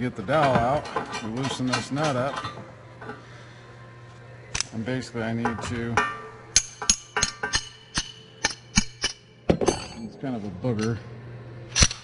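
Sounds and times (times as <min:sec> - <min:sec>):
wrench metallic clicks: 0:11.7 - 0:12.0.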